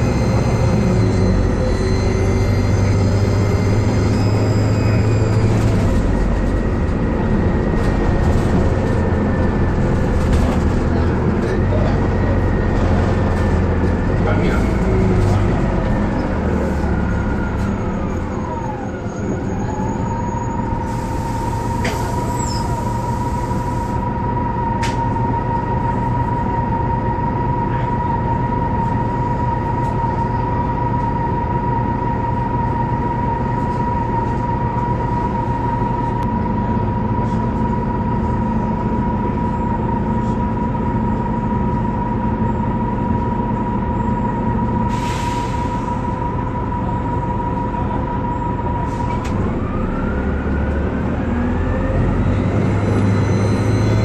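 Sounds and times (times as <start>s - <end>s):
bus engine whining and rumbling: 0.0s - 54.0s.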